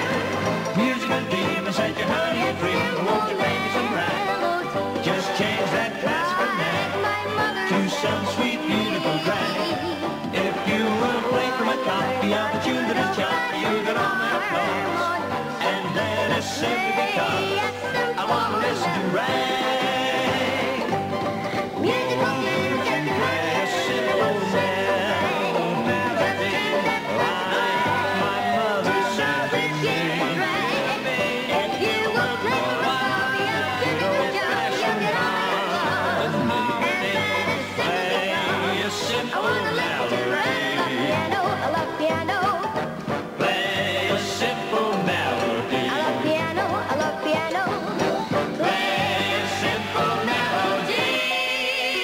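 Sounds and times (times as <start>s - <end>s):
person singing: 0.0s - 42.8s, 43.4s - 52.0s
banjo: 0.0s - 52.0s
double bass: 0.0s - 52.0s
piano: 0.0s - 52.0s
girl singing: 46.2s - 48.0s.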